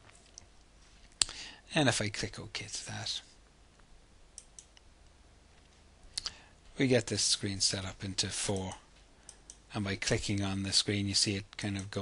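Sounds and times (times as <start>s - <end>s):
low steady hum: 0.0s - 12.0s
computer mouse clicks: 4.4s - 4.9s.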